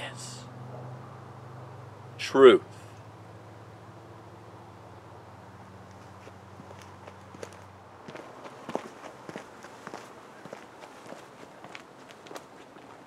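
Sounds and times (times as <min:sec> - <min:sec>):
footsteps crunching leaves and twigs: 0:05.9 - 0:13.0.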